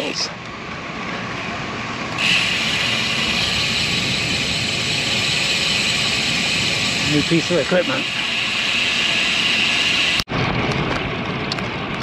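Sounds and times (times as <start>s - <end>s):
wind and road noise while cycling: 0.0s - 12.0s.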